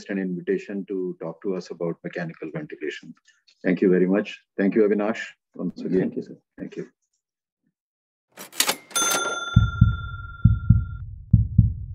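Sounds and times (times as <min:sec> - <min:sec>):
bell-like ding: 0:08.7 - 0:11.0
low double thumps: 0:09.6 - 0:11.9.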